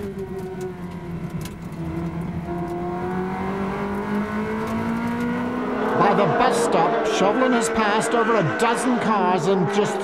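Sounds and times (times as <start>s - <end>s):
race car engine under load: 0.0s - 10.0s.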